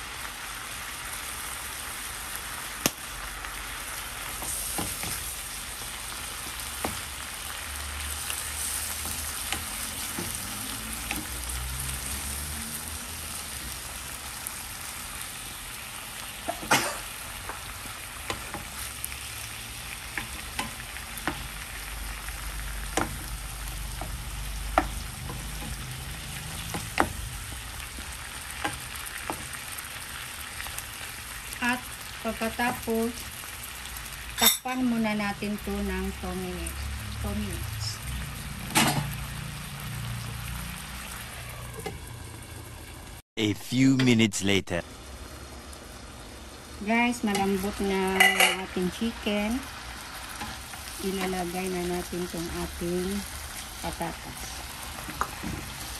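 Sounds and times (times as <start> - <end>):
meat sizzling in hot oil: 0.0 - 43.2, 44.9 - 55.9
wooden spoon knocking on pan: 22.9 - 23.3, 24.0 - 25.7.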